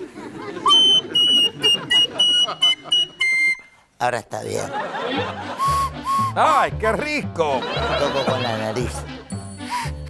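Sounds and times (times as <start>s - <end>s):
soprano recorder playing shrilly: 0.7s - 3.8s, 5.6s - 6.4s.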